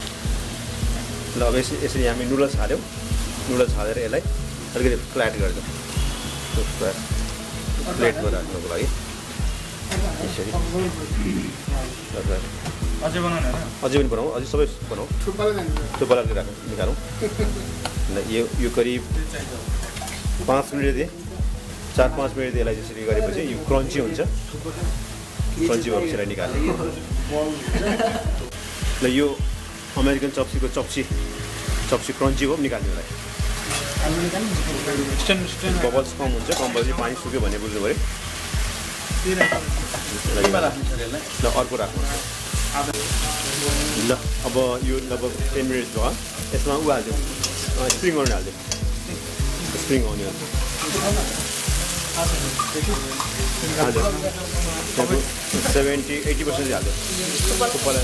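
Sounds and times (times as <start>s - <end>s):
noodles sizzling in hot oil: 0.0s - 58.0s
metal utensil stirring in pan: 19.8s - 20.3s, 47.3s - 49.8s, 52.4s - 53.6s.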